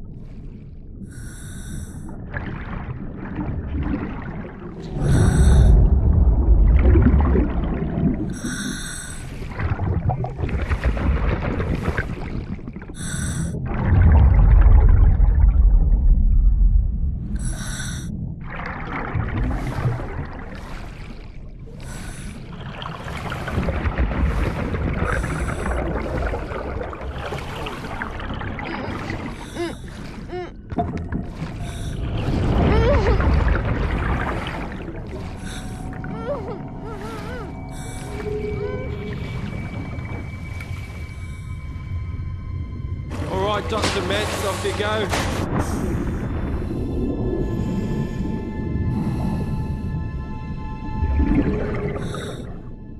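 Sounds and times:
deep underwater rumble: 0.0 - 52.9.

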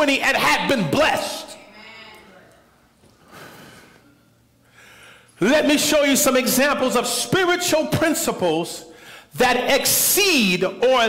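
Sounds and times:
man breathing: 3.2 - 5.4, 8.9 - 9.3.

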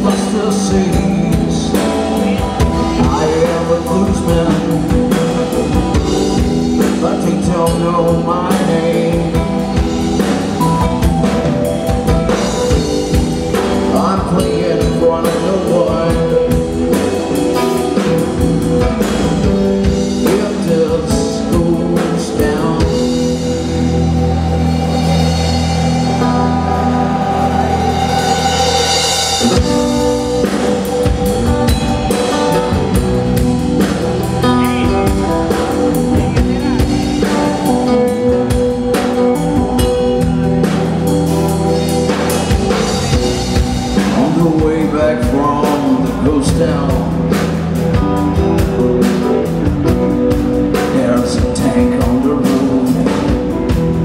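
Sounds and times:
bass guitar: 0.0 - 54.0
drum kit: 0.0 - 54.0
electric guitar: 0.0 - 54.0
keyboard: 0.0 - 54.0.

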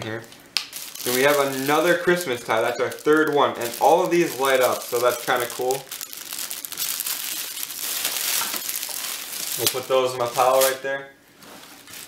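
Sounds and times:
plastic packaging crinkling: 0.1 - 12.0.

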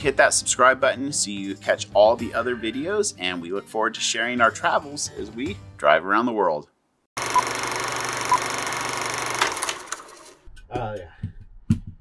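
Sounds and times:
film projector running: 7.2 - 10.4.

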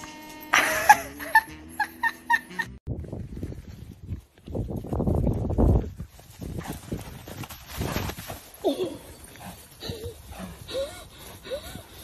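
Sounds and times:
horse hooves thudding on grass: 2.9 - 11.4.

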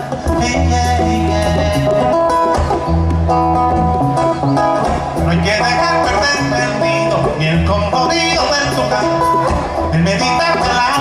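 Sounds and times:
low bass notes: 0.0 - 11.0.

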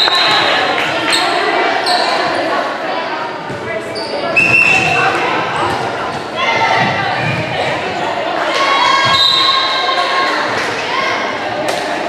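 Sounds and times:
echoing hubbub of voices: 0.0 - 12.0.

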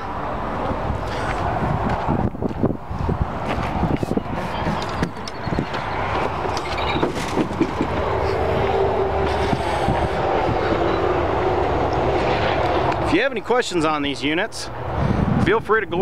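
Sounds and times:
vehicle engine rumbling: 0.0 - 16.0.

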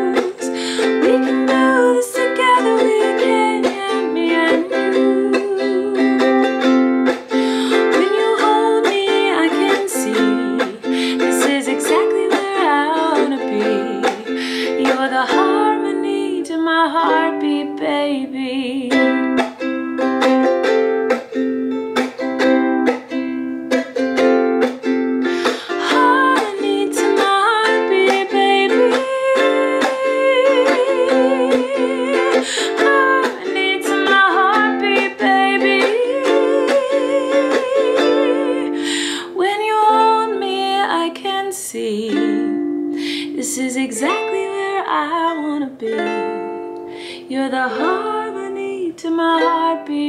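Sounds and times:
woman singing: 0.0 - 19.6, 25.3 - 50.0
ukulele strumming: 0.0 - 50.0.

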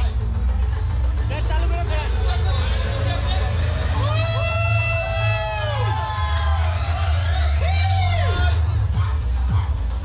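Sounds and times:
audience chatter in a hall: 0.0 - 10.0
deep bass music: 0.0 - 10.0
rising synth tones: 0.9 - 8.4.

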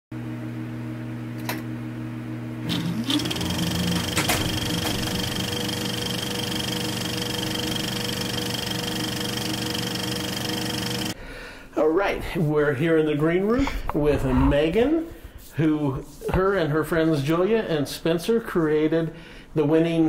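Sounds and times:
film projector clattering: 2.7 - 11.2.

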